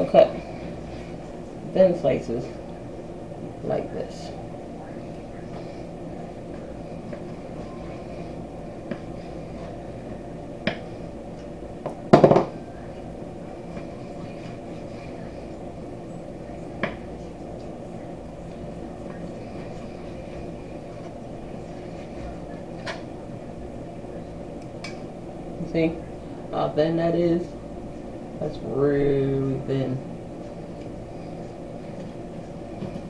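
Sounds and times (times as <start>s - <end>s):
steady background hum: 0.0s - 33.0s.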